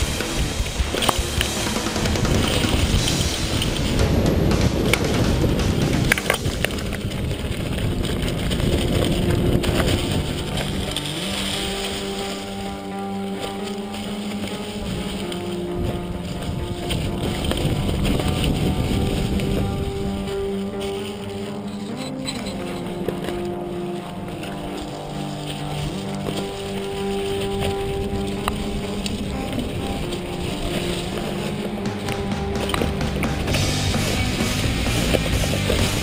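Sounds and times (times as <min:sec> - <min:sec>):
background music with held notes: 0:00.0 - 0:36.0
mountain bike rattling on trail: 0:00.0 - 0:36.0
rushing wind: 0:00.0 - 0:36.0.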